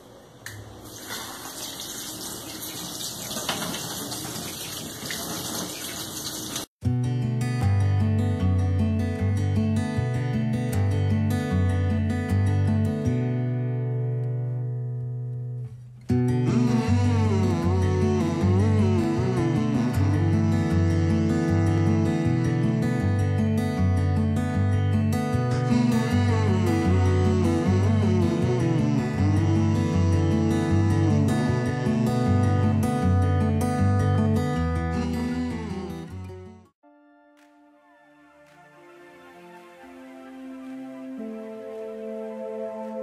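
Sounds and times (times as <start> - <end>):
tap water running over rice: 0.8 - 6.7
guitar music: 6.8 - 43.0.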